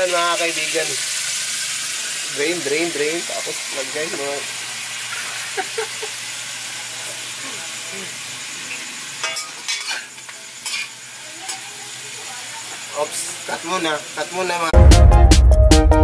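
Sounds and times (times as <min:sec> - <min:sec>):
eggplant sizzling in hot oil: 0:00.0 - 0:14.8
metal spatula scraping wok: 0:09.2 - 0:11.6.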